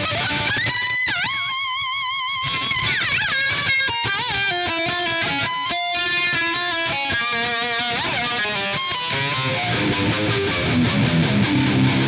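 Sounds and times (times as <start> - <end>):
electric violin melody: 2.2 - 12.0.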